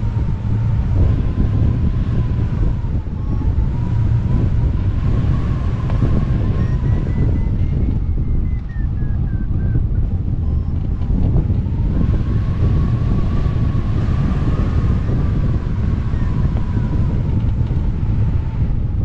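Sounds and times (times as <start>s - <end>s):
wind rushing over microphone: 0.0s - 19.0s.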